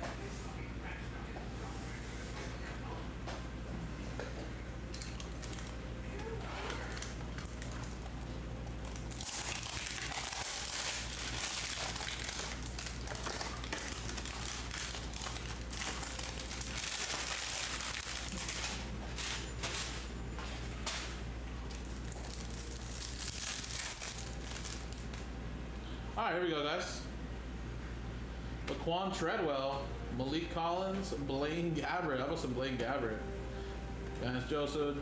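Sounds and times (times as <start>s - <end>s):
plastic wrap crinkling: 5.0s - 5.8s, 6.7s - 20.1s, 21.7s - 25.2s.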